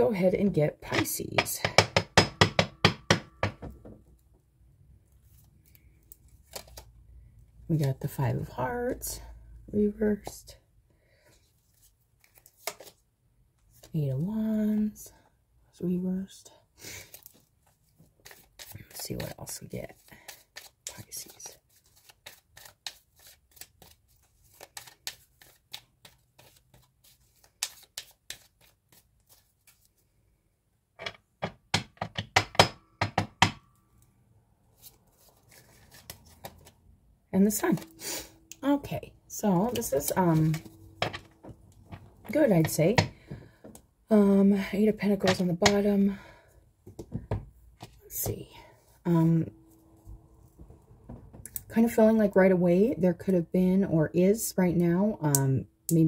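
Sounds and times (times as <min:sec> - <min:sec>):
cards being shuffled: 0:05.3 - 0:06.9, 0:11.6 - 0:13.0, 0:17.0 - 0:30.1, 0:34.8 - 0:36.8.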